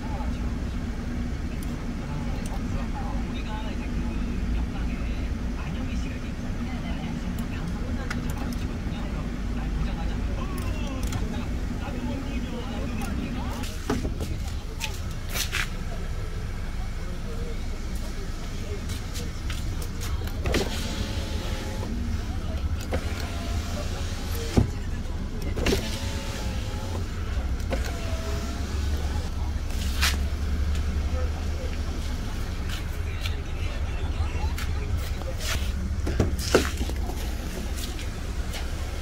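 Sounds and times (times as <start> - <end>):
power window motor whine: 20.3 - 22.0, 22.8 - 24.7, 25.4 - 30.0.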